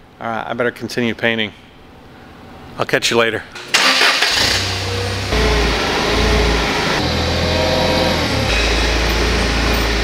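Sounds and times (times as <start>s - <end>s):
forklift engine droning: 3.7s - 10.0s.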